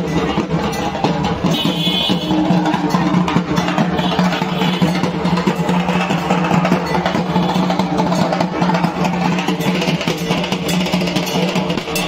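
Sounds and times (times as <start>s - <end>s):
drums beaten with sticks: 0.0s - 12.0s.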